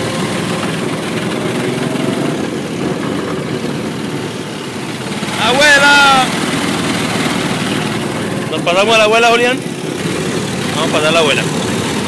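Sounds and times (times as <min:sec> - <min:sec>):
go-kart engine running: 0:00.0 - 0:12.0.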